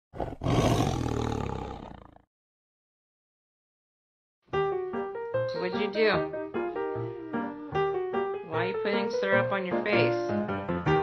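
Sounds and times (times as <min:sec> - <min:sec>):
tiger roar: 0:00.1 - 0:02.3.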